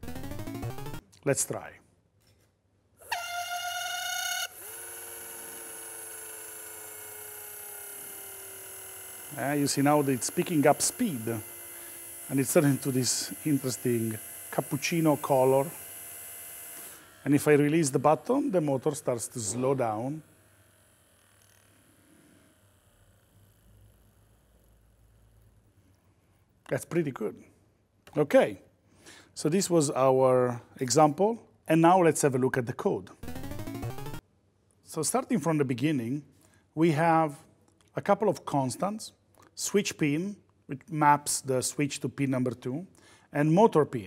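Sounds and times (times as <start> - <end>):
small electric motor whining: 3.0 - 25.5.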